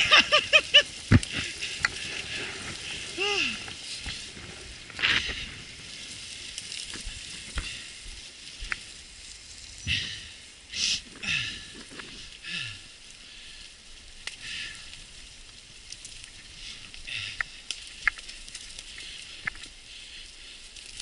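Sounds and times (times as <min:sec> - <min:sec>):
bike tyres crackling over leaves: 0:00.0 - 0:21.0.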